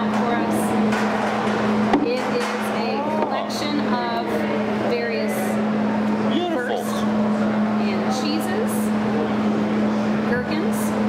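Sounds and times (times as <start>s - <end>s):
steady humming tone: 0.0s - 11.0s
people talking indistinctly: 2.0s - 9.0s.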